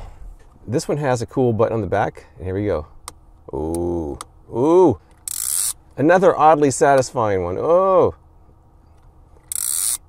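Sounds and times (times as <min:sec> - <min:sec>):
plastic clamp ratcheting zip: 0:09.4 - 0:10.0.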